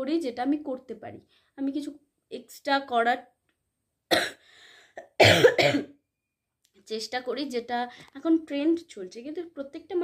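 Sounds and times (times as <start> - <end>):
woman coughing: 4.1 - 4.4, 5.0 - 6.0.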